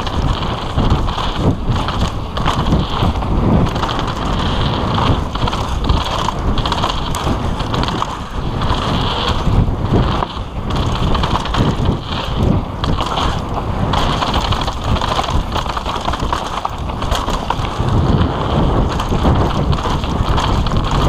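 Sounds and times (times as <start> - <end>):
bike rattling: 0.0 - 21.0
tyres rolling on loose dirt: 0.0 - 21.0
wind buffeting microphone: 0.0 - 21.0.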